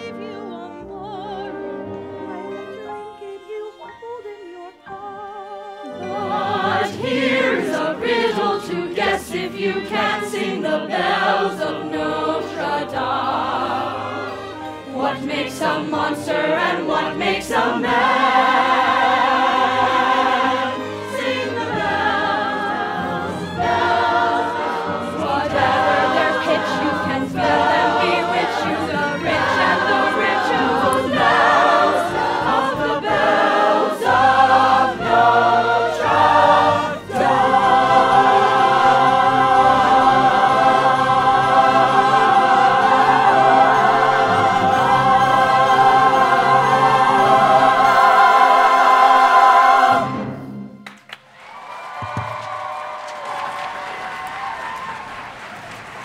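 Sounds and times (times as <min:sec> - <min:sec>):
pit orchestra playing: 0:00.0 - 0:51.0
choir and cast singing: 0:04.7 - 0:50.8.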